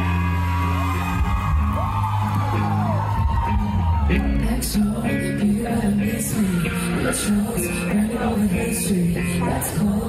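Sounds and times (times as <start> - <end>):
audience whooping: 0.0 - 4.5
live pop song over pa: 0.0 - 10.0.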